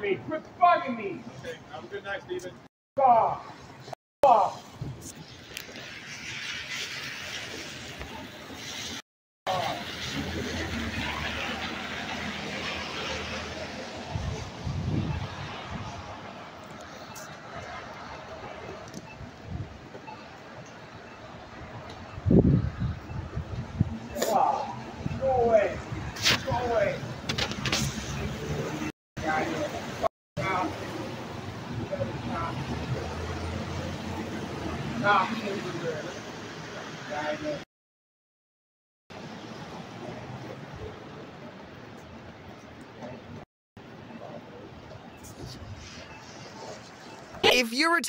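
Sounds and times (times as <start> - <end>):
continuous hiss of wet street: 0.0 - 37.6, 39.1 - 48.0.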